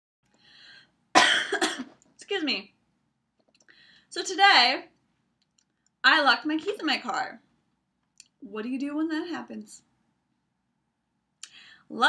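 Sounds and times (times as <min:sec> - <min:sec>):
woman coughing: 0:01.2 - 0:01.9.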